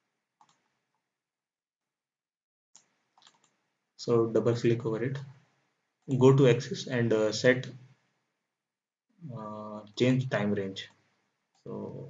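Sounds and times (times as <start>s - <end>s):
faint computer mouse clicks: 0.4s - 0.6s, 2.8s - 3.5s.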